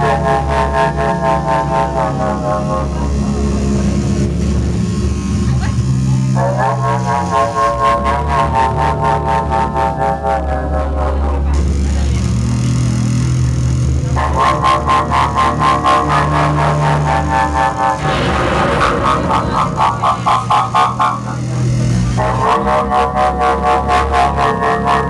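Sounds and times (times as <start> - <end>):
bass notes: 0.0 - 25.0
deep steady drone: 0.0 - 25.0
layered buzzing tones: 0.0 - 25.0
fast pulsing beat: 14.2 - 24.6.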